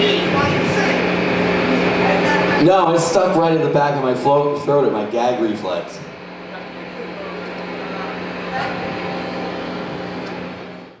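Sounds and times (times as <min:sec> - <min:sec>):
amplifier low hum: 0:00.0 - 0:11.0
room noise: 0:00.0 - 0:11.0.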